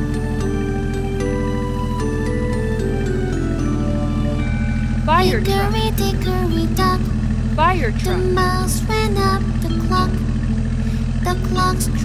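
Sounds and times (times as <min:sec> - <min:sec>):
children's song melody: 0:00.0 - 0:10.5, 0:11.2 - 0:12.0
truck engine running: 0:00.0 - 0:12.0.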